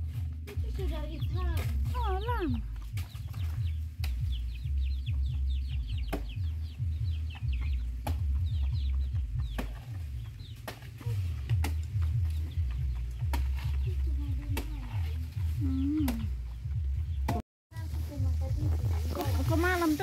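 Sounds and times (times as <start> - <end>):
steady low rumble: 0.0 - 20.0
birds chirping: 0.1 - 20.0.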